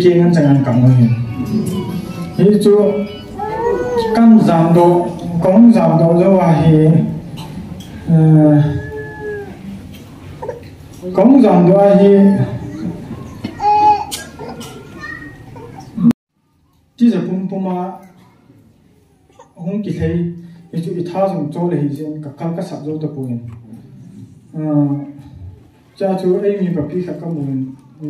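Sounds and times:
man speaking: 0.0 - 7.2, 8.0 - 9.5
congregation chatter: 0.0 - 16.1
children's voices: 0.9 - 4.9, 12.4 - 16.8, 18.1 - 19.6
man's long high wavering cry: 3.3 - 4.5, 8.1 - 9.7.

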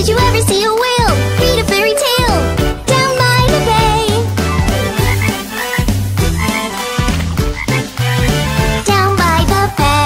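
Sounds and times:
children's song backing music: 0.0 - 10.0.

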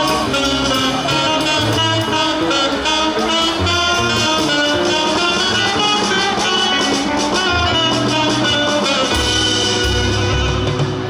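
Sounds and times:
electric guitar: 0.0 - 11.0
low bass notes: 0.0 - 11.0
saxophones playing melody: 0.0 - 11.0.

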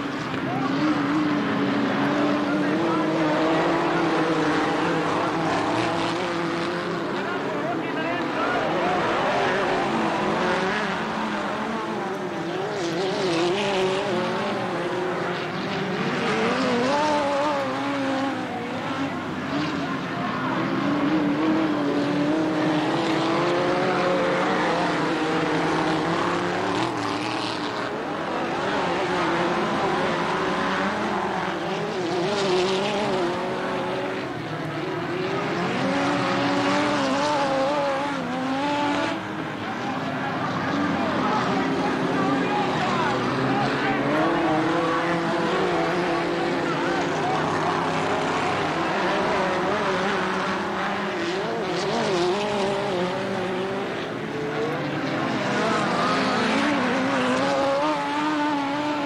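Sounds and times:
race car engines passing: 0.0 - 59.0.

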